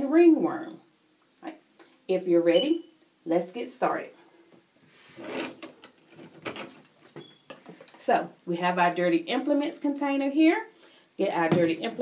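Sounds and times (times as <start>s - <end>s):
drawer sliding open: 5.1s - 6.8s.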